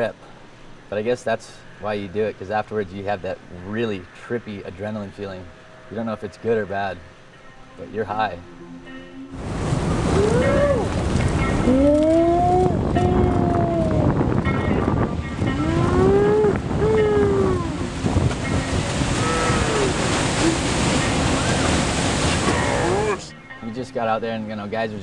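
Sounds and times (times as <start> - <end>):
heavy ocean surf: 9.3 - 23.3
people whooping and yelling: 10.1 - 11.0, 11.7 - 14.2, 15.6 - 18.0, 22.4 - 23.3.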